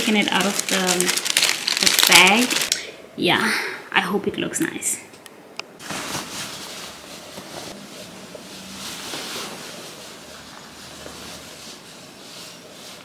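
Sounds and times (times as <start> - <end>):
clothing rustling: 5.8 - 13.0.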